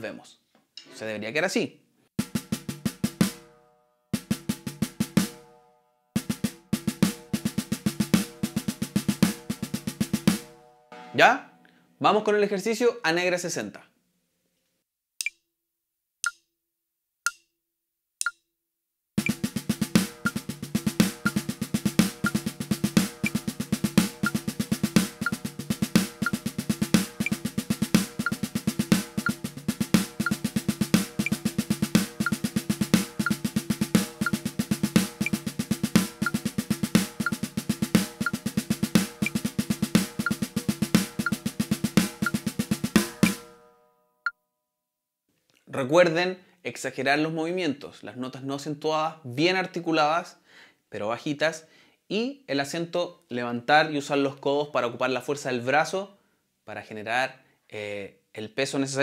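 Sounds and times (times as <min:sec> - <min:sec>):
snare drum roll: 0:02.2 - 0:03.5, 0:04.2 - 0:05.4, 0:06.2 - 0:10.5, 0:19.2 - 0:43.5
metronome clicks: 0:16.2 - 0:16.4, 0:17.2 - 0:17.4, 0:18.2 - 0:18.4.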